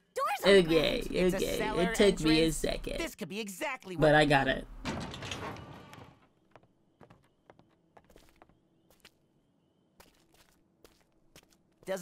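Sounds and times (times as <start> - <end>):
footsteps on wooden stairs: 6.5 - 8.6.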